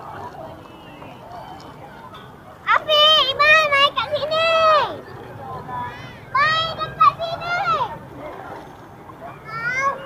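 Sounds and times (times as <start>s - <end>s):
faint crowd chatter: 0.0s - 10.0s.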